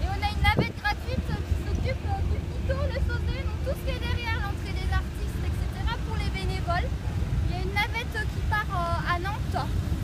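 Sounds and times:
people talking: 0.0s - 6.9s, 7.5s - 9.8s
steady low rumble: 0.0s - 10.0s.

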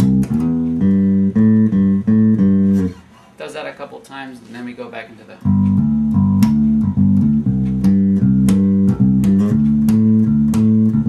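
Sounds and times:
electric bass guitar riff: 0.0s - 3.2s, 5.4s - 11.0s.

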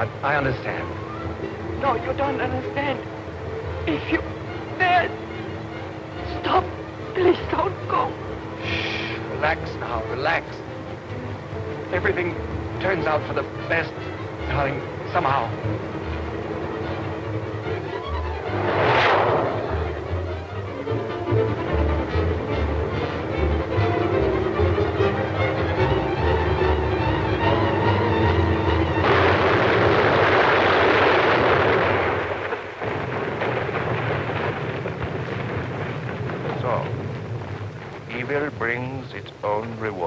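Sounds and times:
dramatic film score: 0.0s - 40.0s
car driving fast: 16.3s - 21.7s
crash and explosion: 18.4s - 20.4s, 28.9s - 39.0s.

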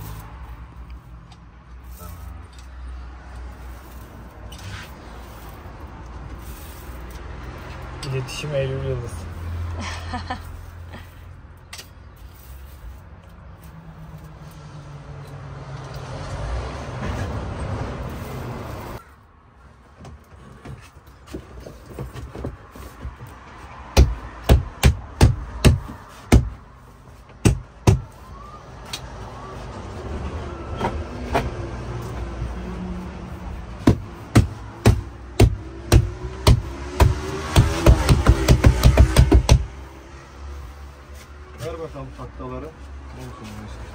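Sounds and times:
sharp knocks on panel: 33.8s - 39.7s.

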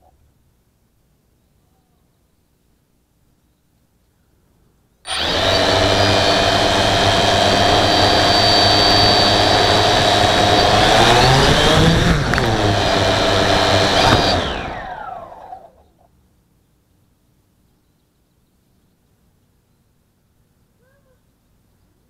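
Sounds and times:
quadcopter motors whining: 5.1s - 15.8s.

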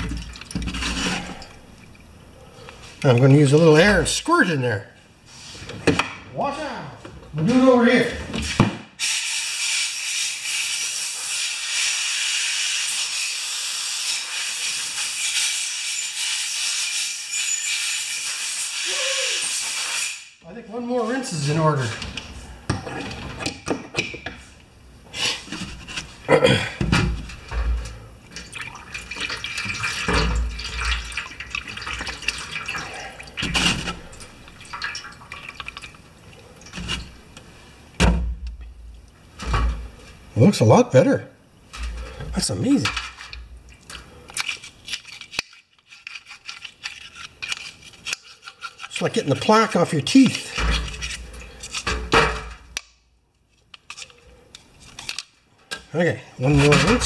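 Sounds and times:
compressed air hissing: 9.0s - 20.4s.

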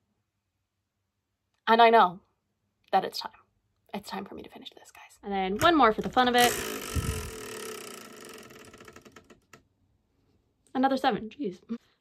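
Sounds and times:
plastic spinner clicking: 5.5s - 9.6s.

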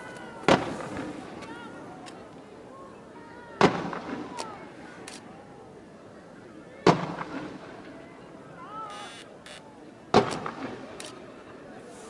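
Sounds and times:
fireworks bangs echoing: 0.4s - 1.3s.

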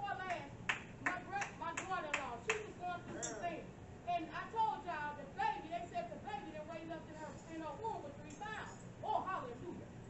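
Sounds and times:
hand claps in steady beat: 0.2s - 2.7s.

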